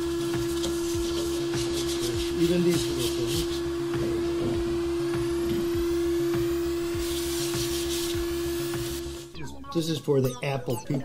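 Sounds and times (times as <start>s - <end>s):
vacuum cleaner blowing: 0.0s - 9.3s.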